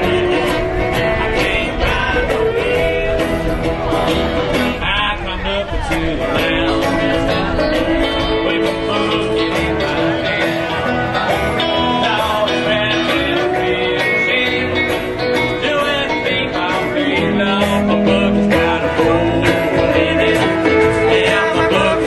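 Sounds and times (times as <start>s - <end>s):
country bluegrass band playing: 0.0s - 22.0s
plucked guitar: 0.0s - 22.0s.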